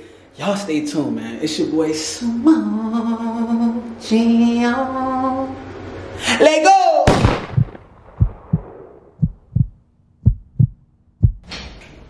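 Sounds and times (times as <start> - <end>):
heartbeat thumps: 7.4 - 11.5.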